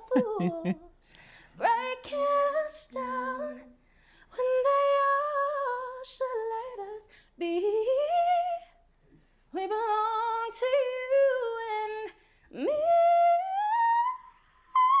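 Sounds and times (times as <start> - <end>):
woman singing unaccompanied: 0.0 - 0.9, 1.6 - 3.8.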